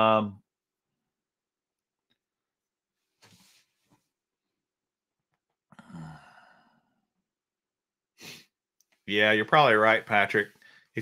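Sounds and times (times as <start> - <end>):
man sighing: 5.7 - 7.0.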